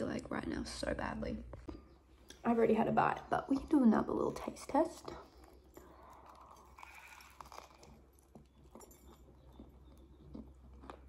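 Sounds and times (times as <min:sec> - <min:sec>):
faint chewing with crunches: 0:05.0 - 0:11.0.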